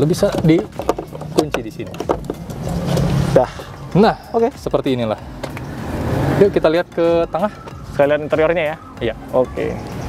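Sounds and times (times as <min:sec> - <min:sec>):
seat frame rubbing and rattling: 0:00.0 - 0:06.7
seat latch clicks: 0:05.4 - 0:05.7.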